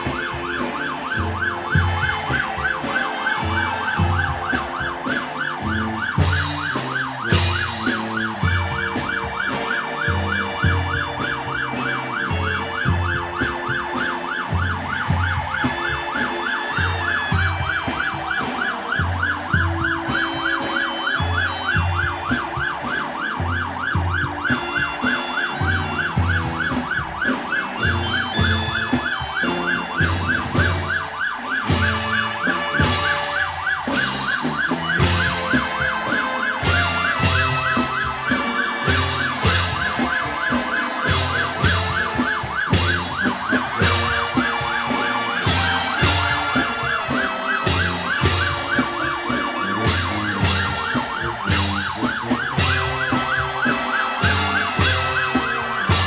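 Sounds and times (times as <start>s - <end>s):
band music with drum beat: 0.0s - 56.0s
siren yelping: 0.0s - 56.0s.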